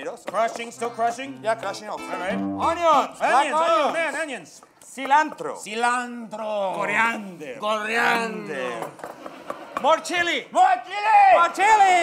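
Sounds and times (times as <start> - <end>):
men talking: 0.0 - 8.9.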